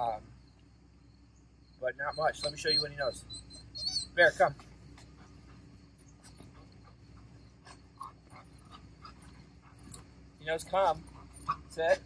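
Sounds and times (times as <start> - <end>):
dog panting: 2.2 - 12.0.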